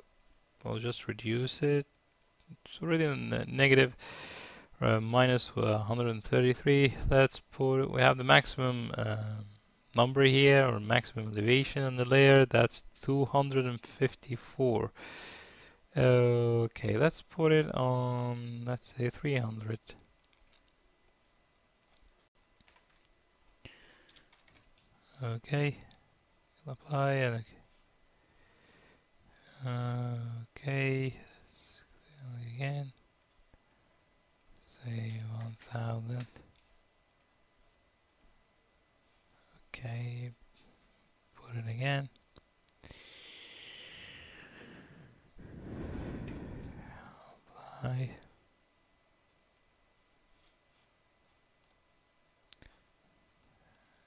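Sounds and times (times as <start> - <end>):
computer mouse clicks: 20.2 - 21.2, 36.2 - 37.4.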